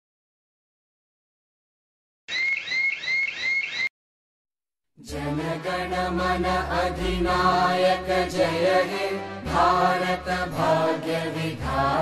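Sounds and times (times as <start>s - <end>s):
electronic alarm chirping: 2.3s - 3.9s.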